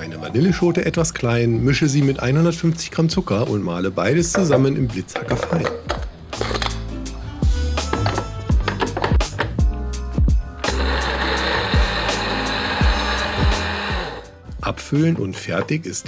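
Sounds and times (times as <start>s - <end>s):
background music: 0.0s - 16.0s
electric chopper grinding whirr: 10.6s - 14.3s.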